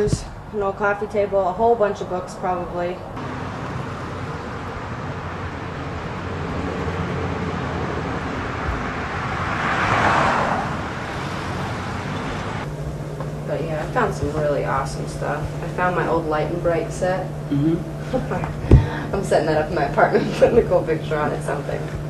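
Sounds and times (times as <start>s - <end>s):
road traffic noise: 0.0s - 22.0s
vehicle passing: 1.7s - 17.3s.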